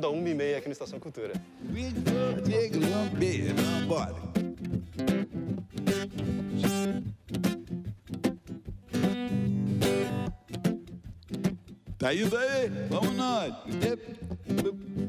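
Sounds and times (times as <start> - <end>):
acoustic guitar strumming: 0.3 - 15.0.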